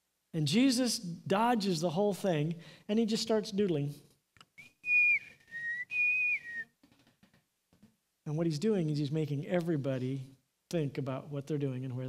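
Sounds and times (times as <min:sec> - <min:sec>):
man whistling a tune: 0:04.6 - 0:06.8.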